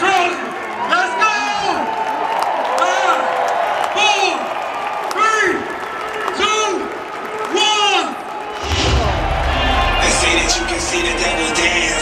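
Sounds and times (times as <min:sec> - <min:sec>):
man shouting over public address: 0:00.0 - 0:02.0, 0:02.7 - 0:08.4, 0:09.6 - 0:12.0
deep low rumble: 0:08.6 - 0:12.0.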